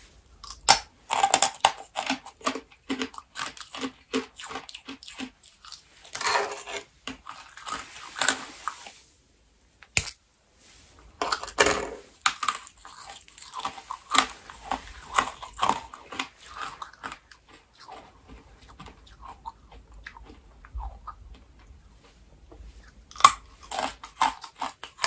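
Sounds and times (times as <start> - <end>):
crunching candy: 0.3 - 8.9, 11.2 - 21.7, 22.9 - 25.0.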